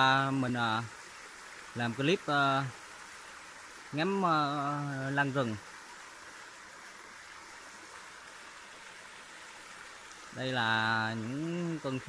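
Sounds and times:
stream running over rocks: 0.0 - 12.0.

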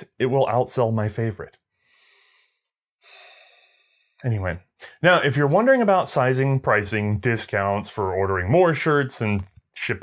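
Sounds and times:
man breathing: 1.7 - 4.2.

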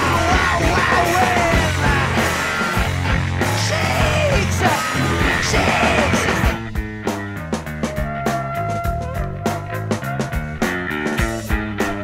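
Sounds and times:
rock music with yelled vocals: 0.0 - 12.0.

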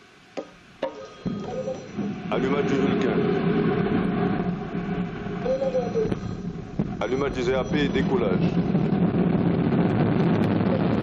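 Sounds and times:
rocket engine rushing: 1.2 - 11.0.

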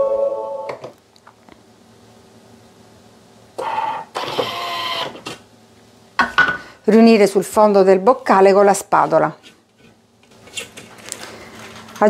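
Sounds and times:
motorised locking arms whirring: 3.6 - 5.4.

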